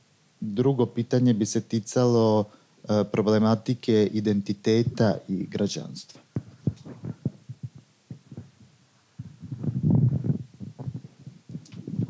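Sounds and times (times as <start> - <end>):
microphone handling thumps: 4.7 - 5.3, 6.2 - 12.0.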